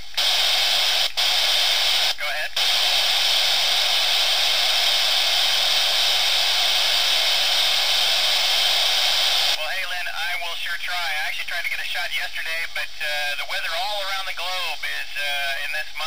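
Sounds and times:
radio receiver hiss: 0:00.0 - 0:16.0
voice over radio: 0:02.1 - 0:02.9, 0:09.6 - 0:16.0.

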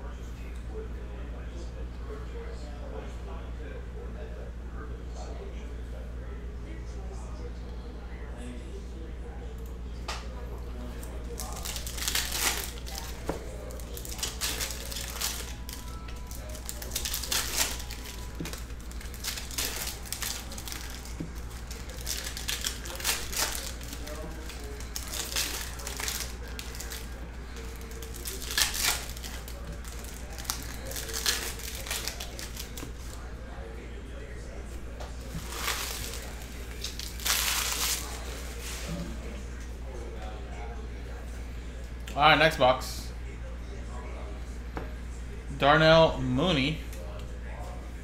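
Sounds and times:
foil packs crinkling: 0:11.0 - 0:33.3, 0:35.2 - 0:38.9.

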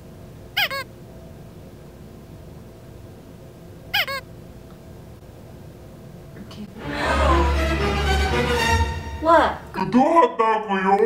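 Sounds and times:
high squeaky chirp: 0:00.6 - 0:00.9, 0:04.0 - 0:04.3.

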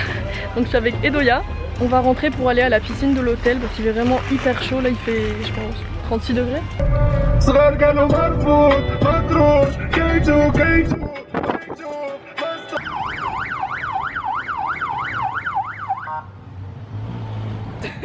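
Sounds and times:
low steady rumble: 0:06.8 - 0:11.0
music with heavy beat: 0:06.8 - 0:12.8
electronic siren yelping: 0:12.8 - 0:16.3.

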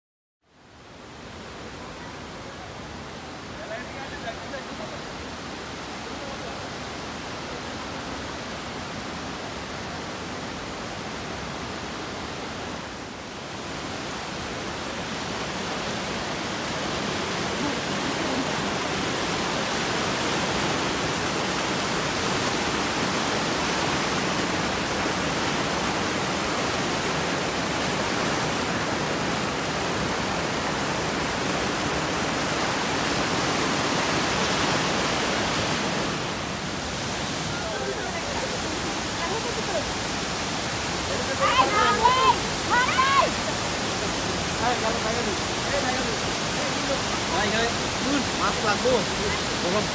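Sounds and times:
river water rushing over rocks: 0:00.5 - 0:49.9.

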